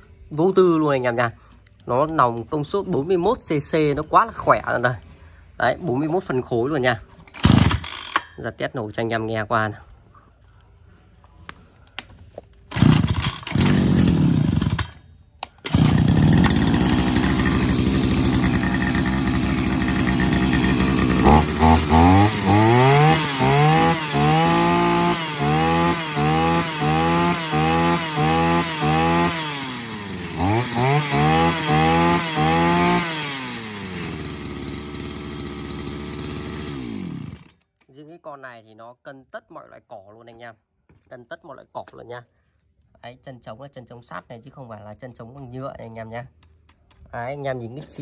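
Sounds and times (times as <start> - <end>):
brush cutter engine revving: 7.3 - 8.2, 12.7 - 15.0, 15.6 - 37.6.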